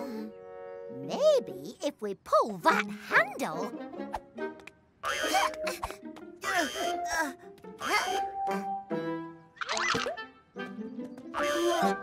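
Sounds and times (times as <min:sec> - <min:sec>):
cartoon music: 0:05.0 - 0:12.0.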